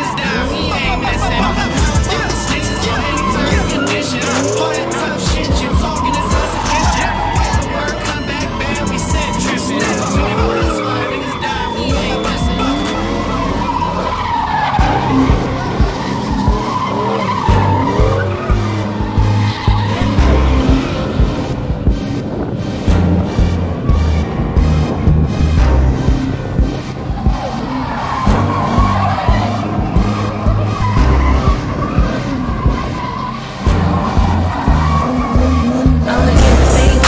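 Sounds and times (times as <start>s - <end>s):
engines revving: 0.0s - 37.0s
rap music with heavy bass: 0.0s - 37.0s
tyres squealing: 0.0s - 37.0s.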